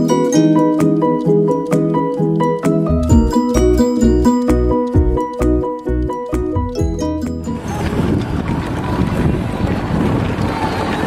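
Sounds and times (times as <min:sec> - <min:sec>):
background music: 0:00.0 - 0:07.9
wind noise on microphone: 0:06.6 - 0:11.0.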